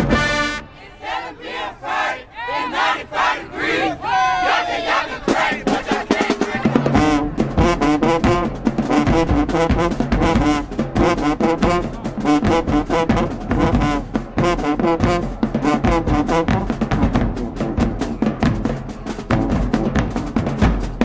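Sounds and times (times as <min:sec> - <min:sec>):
marching band brass tune: 0:00.0 - 0:21.0
drum hits: 0:05.3 - 0:21.0.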